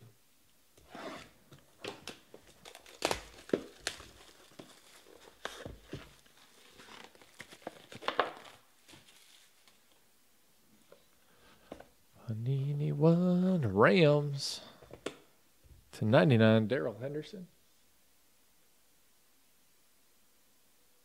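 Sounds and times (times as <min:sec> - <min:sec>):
plastic shrink wrap crackling: 0:01.6 - 0:10.0.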